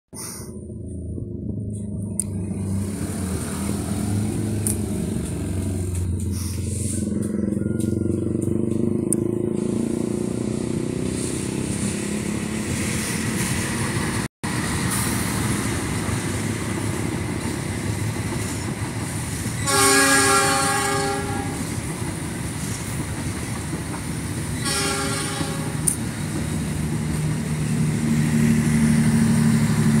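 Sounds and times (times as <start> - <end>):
passenger train rumbling: 0.1 - 30.0
train horn blasts: 19.6 - 21.7, 24.6 - 26.0.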